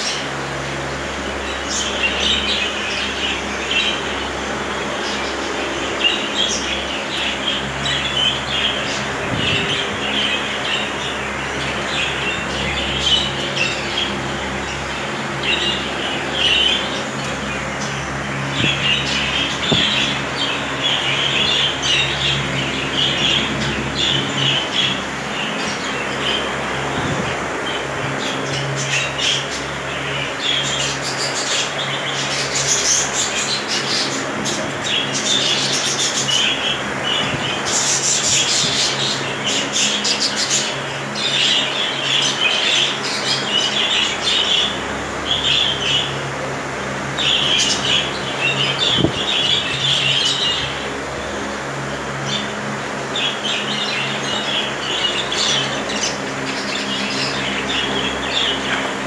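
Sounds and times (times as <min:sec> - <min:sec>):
budgerigars chattering and chirping: 0:00.0 - 0:00.5, 0:01.2 - 0:46.2, 0:47.1 - 0:50.9, 0:52.2 - 0:59.0
steady low hum: 0:00.0 - 0:59.0.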